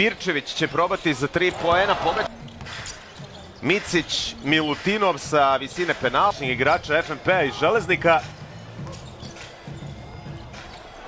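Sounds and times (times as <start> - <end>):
background music: 0.0 - 11.0
crowd noise: 0.0 - 11.0.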